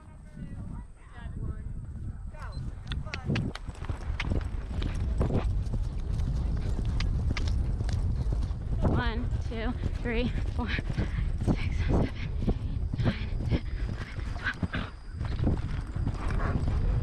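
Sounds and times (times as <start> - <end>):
wind rumble on microphone: 0.0 - 17.0
horse hoofbeats on grass: 3.0 - 17.0.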